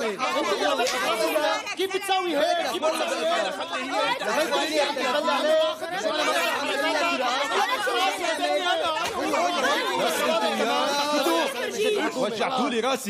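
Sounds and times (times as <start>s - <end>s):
voices arguing: 0.0s - 13.0s.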